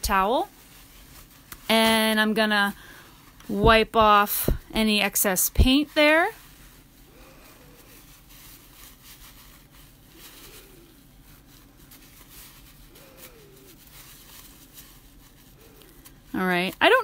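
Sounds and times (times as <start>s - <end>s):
paper towel rustling: 0.0s - 17.0s.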